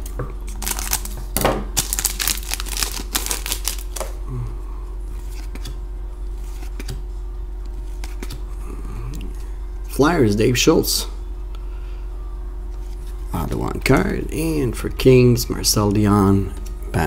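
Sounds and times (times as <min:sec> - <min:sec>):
card pack wrapper tearing and crinkling: 0:00.5 - 0:01.2, 0:01.8 - 0:04.1.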